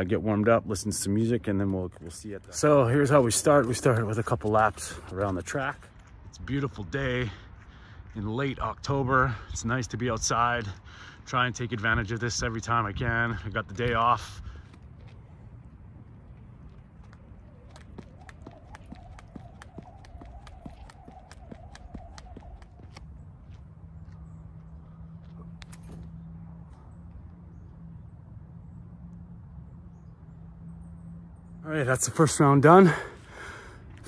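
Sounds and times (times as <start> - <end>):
skipping rope slapping ground: 16.6 - 23.1.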